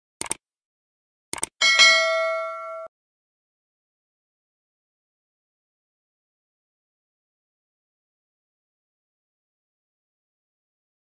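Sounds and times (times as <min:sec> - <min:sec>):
double mouse clicks: 0:00.2 - 0:00.4, 0:01.3 - 0:01.6
notification bell ding: 0:01.6 - 0:02.9.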